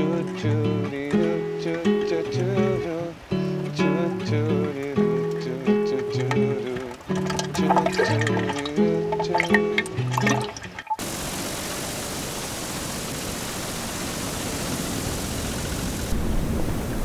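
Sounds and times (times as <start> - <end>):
acoustic guitar music: 0.0 - 11.0.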